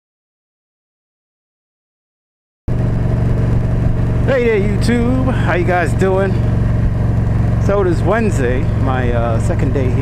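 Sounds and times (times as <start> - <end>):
motorcycle engine running: 2.7 - 10.0.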